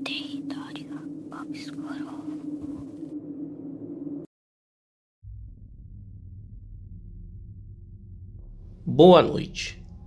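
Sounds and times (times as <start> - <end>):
person whispering: 0.0 - 2.5
steady low drone: 0.0 - 4.3, 5.3 - 10.0.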